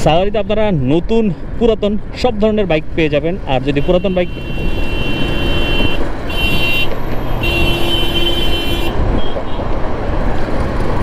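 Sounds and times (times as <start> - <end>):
motorcycle road and wind noise: 0.0 - 11.0
vehicle horn honking: 3.7 - 9.6.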